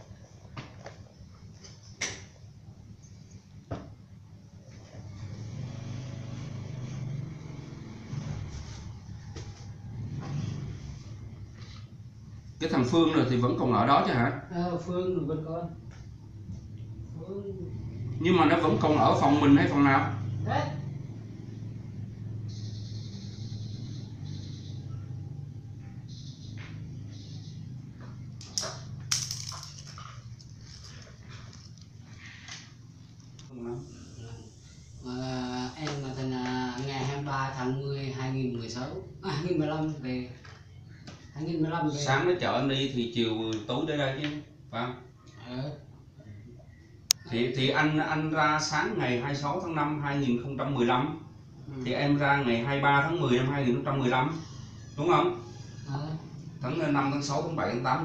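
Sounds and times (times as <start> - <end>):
vehicle engine droning: 2.6 - 13.8, 15.6 - 41.4, 48.0 - 58.0.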